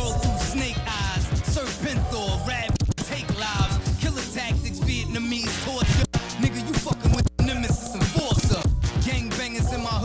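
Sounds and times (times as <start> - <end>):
rapping over a beat: 0.0 - 10.0.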